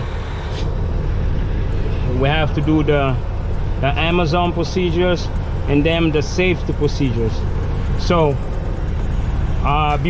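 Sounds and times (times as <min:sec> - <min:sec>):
diesel engine rumble: 0:00.0 - 0:10.0.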